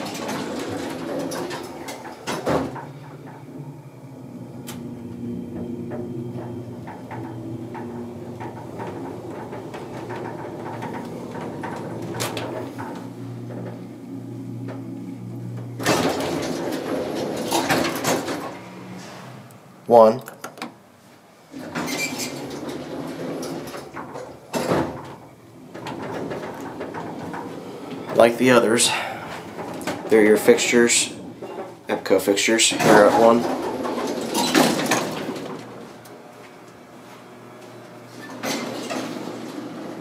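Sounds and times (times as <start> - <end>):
elevator thump: 0.0 - 19.2
elevator doors rattling open: 0.0 - 20.9, 21.5 - 40.0
elevator machinery humming: 0.0 - 40.0.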